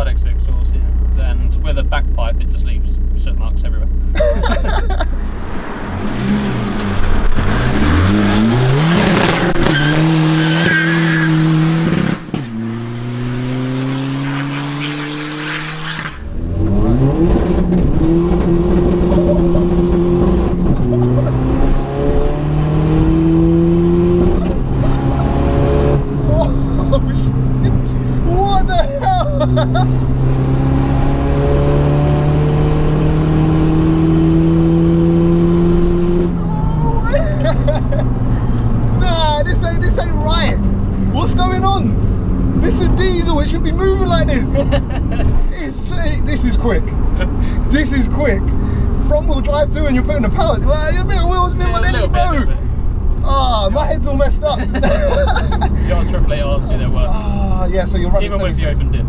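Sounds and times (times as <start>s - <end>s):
car engine accelerating: 0.0s - 59.0s
people laughing: 4.2s - 5.1s, 19.0s - 21.9s, 24.4s - 30.0s, 36.4s - 38.5s, 44.2s - 45.5s, 54.4s - 56.2s.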